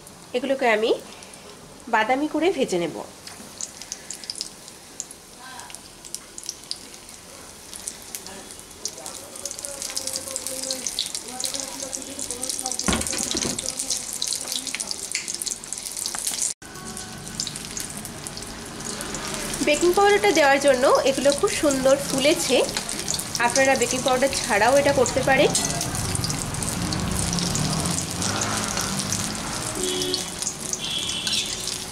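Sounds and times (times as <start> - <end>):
deep-frying in hot oil: 0.0 - 31.9.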